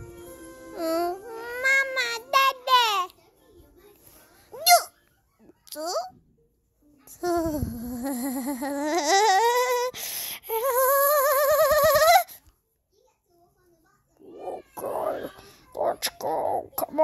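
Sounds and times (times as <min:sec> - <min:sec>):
child making wobbly vocal noises: 0:07.2 - 0:12.4, 0:14.3 - 0:17.0.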